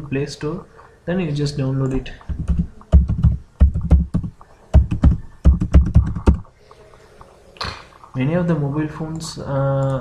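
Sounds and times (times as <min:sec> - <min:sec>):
computer keyboard typing: 0:01.8 - 0:06.5.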